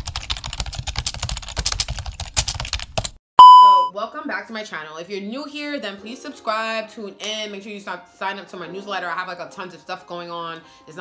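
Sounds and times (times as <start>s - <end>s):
rapid typing key clicks: 0.0s - 3.2s.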